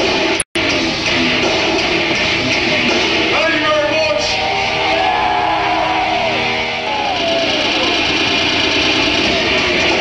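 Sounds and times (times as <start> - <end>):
distorted electric guitar: 0.0 - 10.0
live heavy metal: 0.0 - 10.0.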